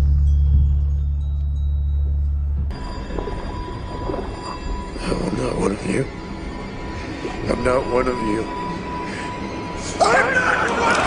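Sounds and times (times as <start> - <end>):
loud low drone: 0.0 - 10.0
high ringing tones: 0.0 - 11.0.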